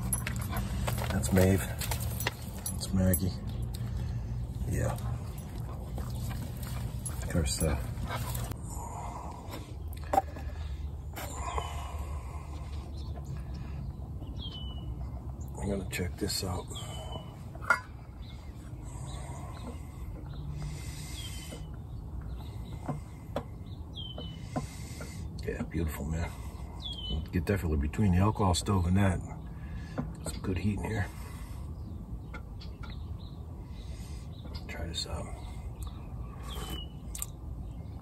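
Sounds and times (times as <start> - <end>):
steady low rumble: 0.0 - 23.9
wet mouth eating sounds: 37.1 - 37.4.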